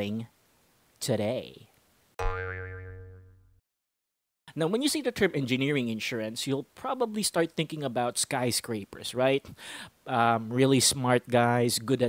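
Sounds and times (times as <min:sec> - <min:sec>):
wobbling pitched note effect: 0:02.2 - 0:03.6.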